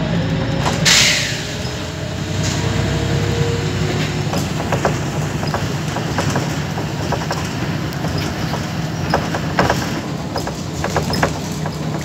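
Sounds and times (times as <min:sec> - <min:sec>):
bus engine and road drone: 0:00.0 - 0:12.0
short air hiss: 0:00.8 - 0:01.5
rattling clicks of fittings: 0:04.0 - 0:12.0.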